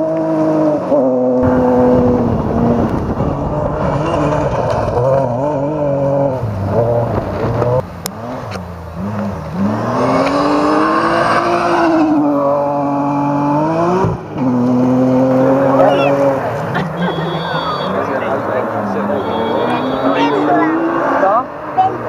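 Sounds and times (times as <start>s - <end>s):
rally car engine revving: 0.0s - 22.0s.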